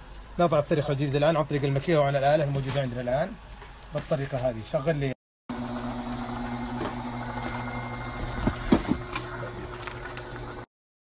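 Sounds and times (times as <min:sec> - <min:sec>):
conveyor belt and motor humming: 0:05.5 - 0:10.6.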